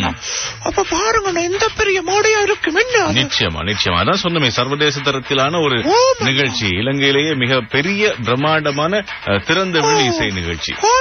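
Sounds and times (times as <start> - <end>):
man talking: 3.1 - 11.0.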